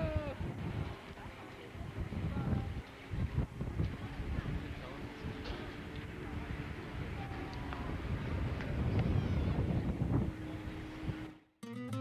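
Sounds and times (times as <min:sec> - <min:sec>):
wind buffeting microphone: 0:00.0 - 0:11.4
plucked acoustic guitar: 0:11.6 - 0:12.0.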